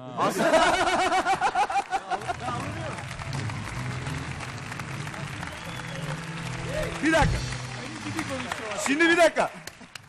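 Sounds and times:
audience applauding: 0.4s - 10.0s.

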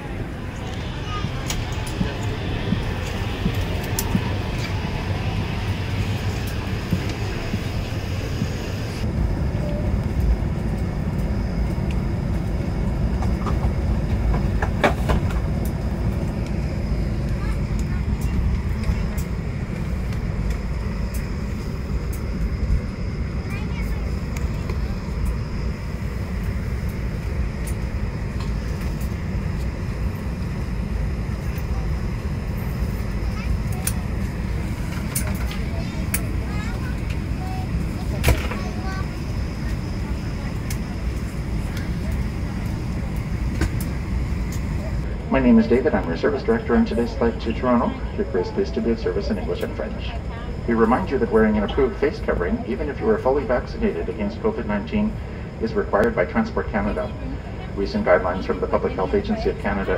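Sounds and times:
aircraft cabin rumble: 0.0s - 59.9s
passengers' voices: 0.0s - 59.9s.

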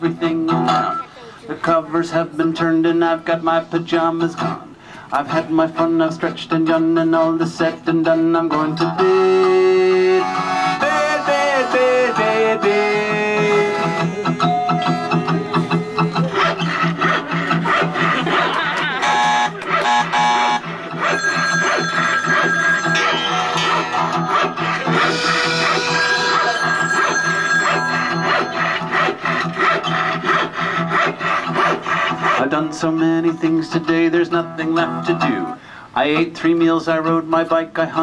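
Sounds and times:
acoustic guitar strumming: 0.0s - 1.0s, 5.7s - 35.5s
accordion: 9.0s - 32.5s.

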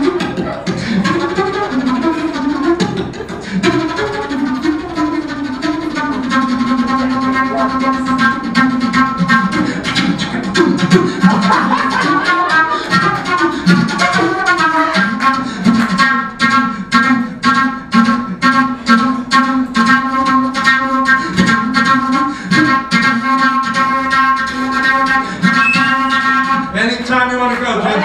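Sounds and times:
jazz flute solo: 0.0s - 26.8s.

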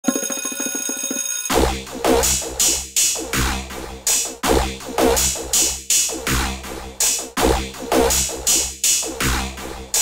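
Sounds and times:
deep bass: 1.6s - 10.0s.

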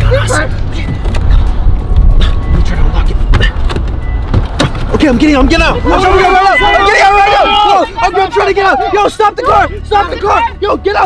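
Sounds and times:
background music: 0.0s - 11.0s
car rumble inside cabin: 0.0s - 11.0s.

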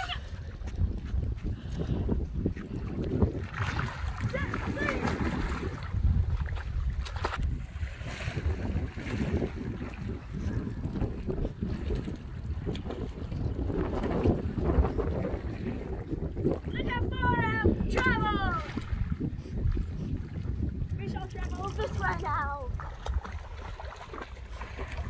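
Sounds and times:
water lapping at shore: 0.0s - 25.0s
wind buffeting microphone: 0.0s - 25.0s.

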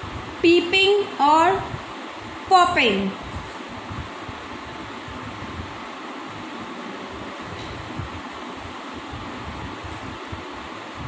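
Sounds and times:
fan-like whooshing noise: 0.0s - 11.0s.

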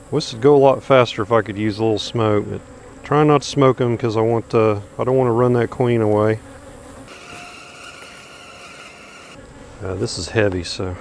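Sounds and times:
honey bees buzzing: 0.0s - 11.0s.

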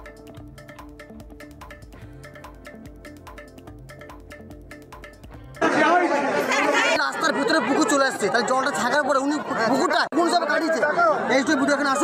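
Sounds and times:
people talking over one another: 5.6s - 12.0s.

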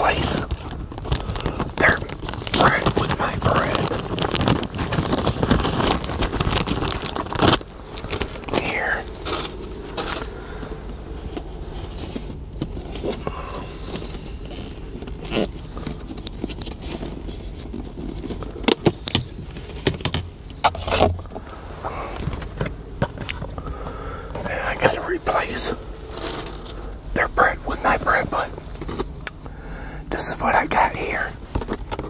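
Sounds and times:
plastic zipper bag crinkling: 0.0s - 10.4s, 24.5s - 27.0s.

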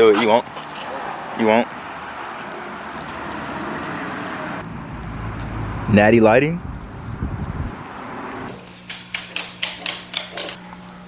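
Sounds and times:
low rumble of wind: 2.1s - 8.6s.

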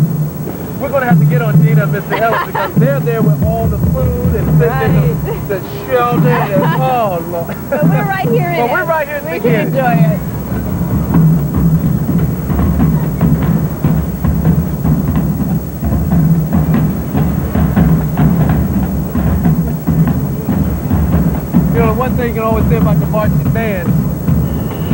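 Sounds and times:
marching drumline cadence: 0.0s - 24.9s.

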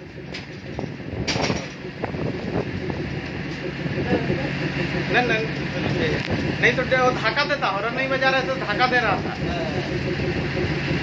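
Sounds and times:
locomotive engine humming: 0.0s - 11.0s.

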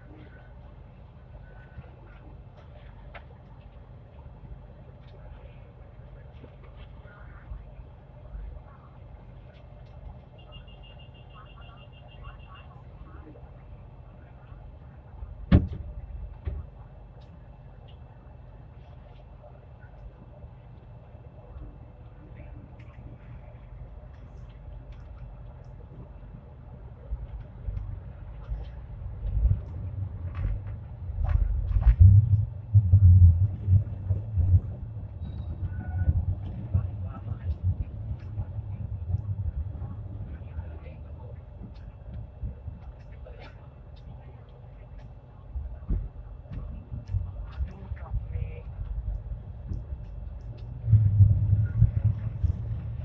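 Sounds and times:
tram wheels rumbling on tracks: 13.0s - 53.0s.

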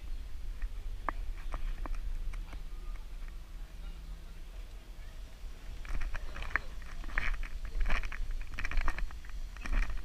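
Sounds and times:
wind rumble on microphone: 0.0s - 10.0s.

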